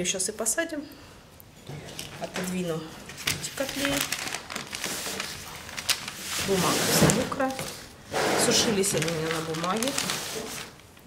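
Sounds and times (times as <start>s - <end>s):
paper rustling and crinkling: 1.7s - 11.0s.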